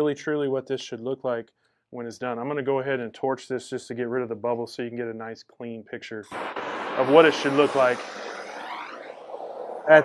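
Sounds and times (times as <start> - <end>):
gas torch hissing: 6.3 - 10.0.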